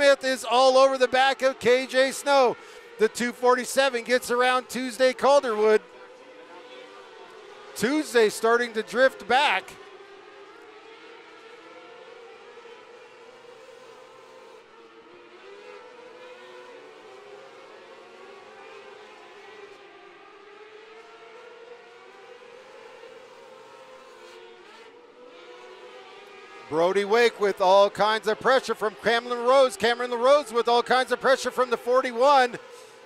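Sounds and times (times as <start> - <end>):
racing cars engines whining: 0.0 - 33.0.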